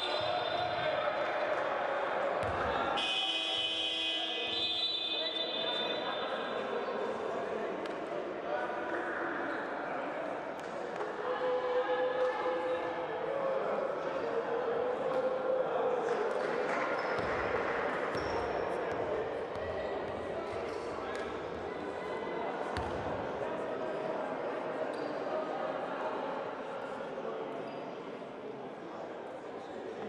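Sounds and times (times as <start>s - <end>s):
indistinct voices in a hall: 0.0s - 30.0s.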